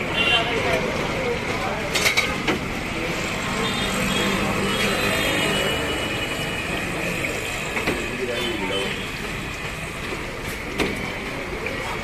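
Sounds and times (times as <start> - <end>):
street noise: 0.0 - 12.0.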